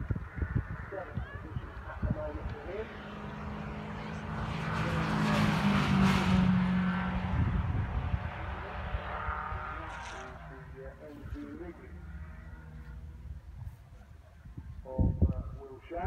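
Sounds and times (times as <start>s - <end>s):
race car passing at speed: 0.2s - 11.0s.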